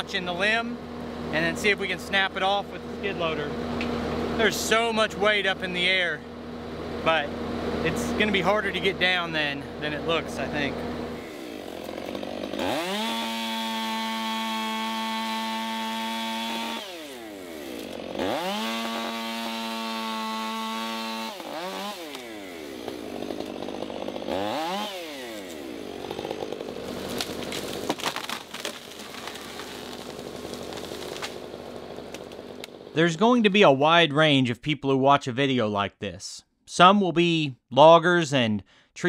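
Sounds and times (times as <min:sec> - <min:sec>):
pole saw motor revving: 0:06.7 - 0:33.0.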